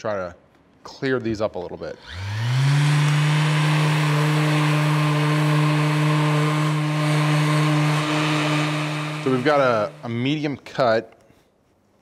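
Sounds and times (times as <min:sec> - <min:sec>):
orbital sander sanding wood: 0:02.0 - 0:10.5.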